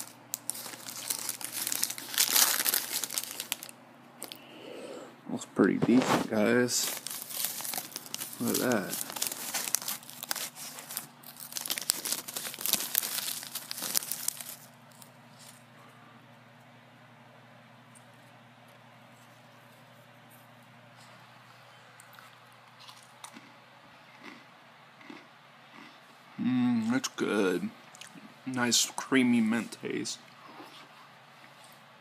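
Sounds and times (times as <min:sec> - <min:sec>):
dry pieces crunching: 0:00.0 - 0:04.4, 0:05.9 - 0:15.6
pouch crinkling: 0:00.0 - 0:04.4, 0:05.8 - 0:15.6.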